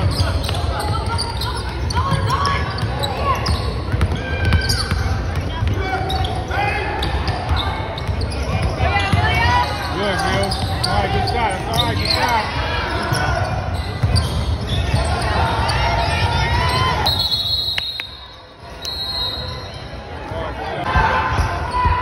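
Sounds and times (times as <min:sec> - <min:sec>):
voices calling out and talking: 0:00.0 - 0:22.0.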